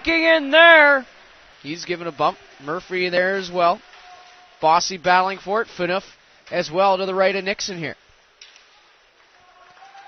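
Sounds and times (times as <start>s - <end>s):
crowd and rink noise: 0.0s - 10.0s.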